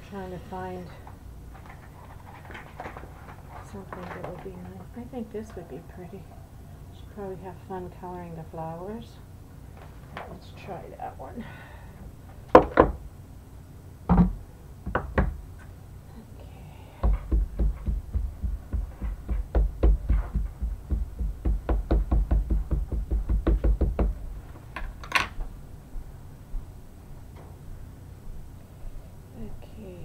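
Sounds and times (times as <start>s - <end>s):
ink pad tapping rubber stamp: 17.0s - 24.2s
wooden stamp block knocks: 17.0s - 24.2s.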